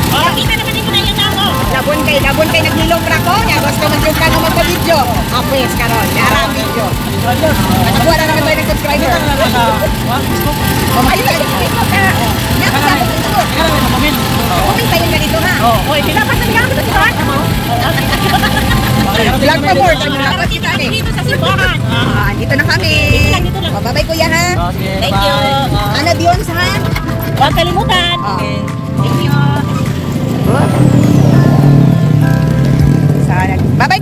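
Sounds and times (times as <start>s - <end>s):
people talking over one another: 0.0s - 34.0s
road noise: 0.0s - 34.0s
vehicle engine rumble: 0.0s - 34.0s.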